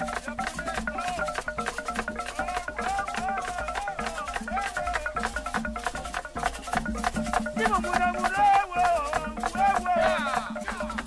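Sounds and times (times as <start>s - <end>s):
fast dense drumming: 0.0s - 11.0s
wavering melodic line: 0.0s - 11.0s
wooden clicking strokes: 0.0s - 11.0s.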